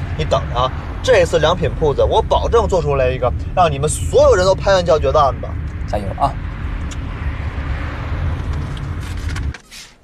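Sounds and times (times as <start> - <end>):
road and engine noise in car: 0.0 - 10.0.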